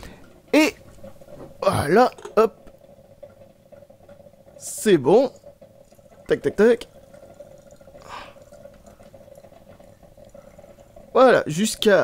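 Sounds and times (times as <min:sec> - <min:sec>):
liquid pouring into bottle: 0:02.1 - 0:11.6.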